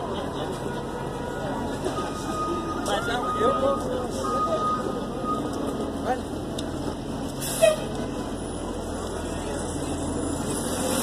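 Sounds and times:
traffic noise: 0:00.0 - 0:11.0
voices of passers-by: 0:00.0 - 0:11.0.

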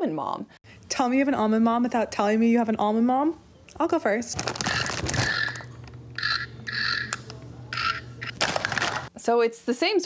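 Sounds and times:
electronic pig oinks: 0:07.7 - 0:08.0.

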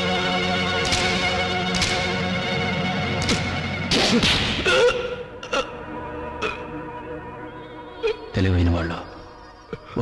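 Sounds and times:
background film score: 0:00.0 - 0:10.0.

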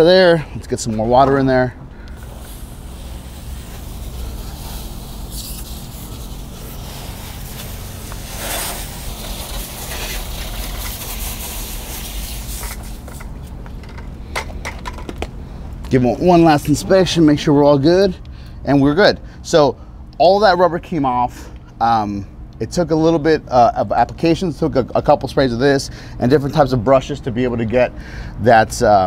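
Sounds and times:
hose nozzle spraying water: 0:02.1 - 0:13.3
scattered clicks and knocks: 0:12.6 - 0:15.3.

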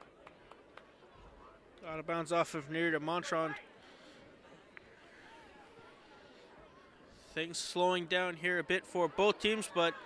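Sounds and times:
faint distant voices: 0:03.3 - 0:10.0.

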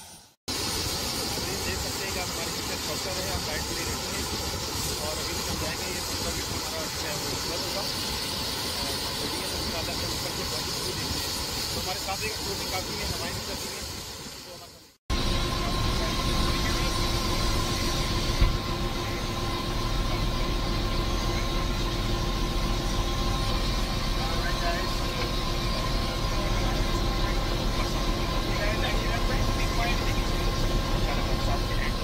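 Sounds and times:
helicopter engine and rotor: 0:00.0 - 0:32.0.

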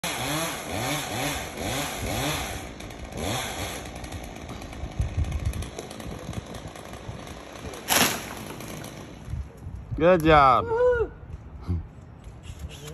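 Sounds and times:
chainsaw engine revving: 0:00.0 - 0:09.4.

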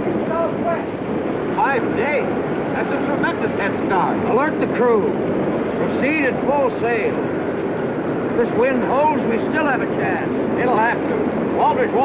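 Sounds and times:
wind and sea noise: 0:00.0 - 0:12.0.

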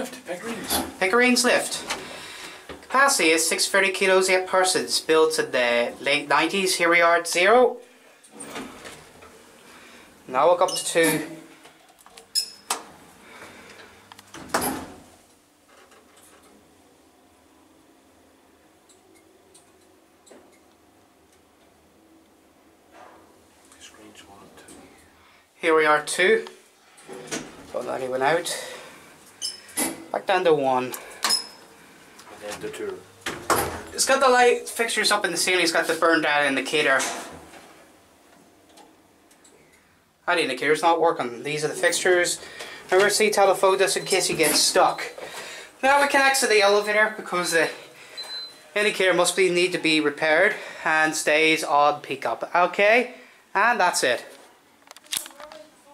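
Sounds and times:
lift doors sliding closed: 0:08.3 - 0:09.4.

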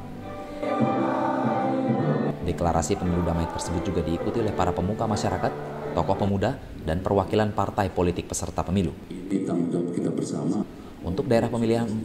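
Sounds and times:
group singing in unison: 0:00.2 - 0:06.6.

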